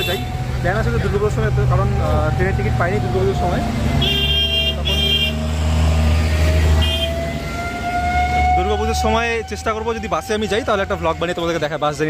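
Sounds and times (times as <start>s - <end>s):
road traffic: 0.0s - 12.0s
car horn short blasts: 6.8s - 7.1s.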